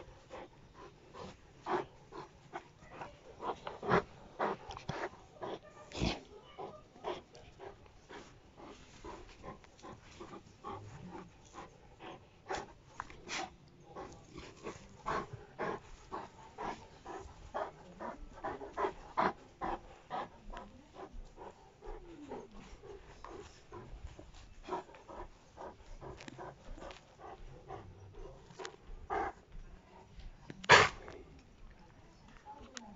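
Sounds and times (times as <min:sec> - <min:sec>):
dog breathing hard: 0:00.0 - 0:31.2.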